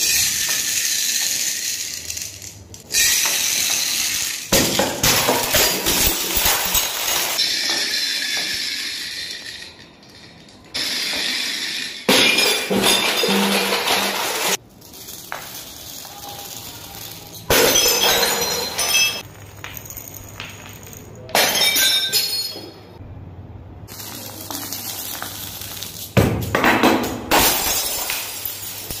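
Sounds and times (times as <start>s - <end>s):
beads clinking: 0.0s - 12.1s, 14.2s - 21.3s, 23.9s - 26.5s
glass bottles shattering: 2.9s - 14.6s, 15.5s - 23.0s, 23.9s - 29.0s.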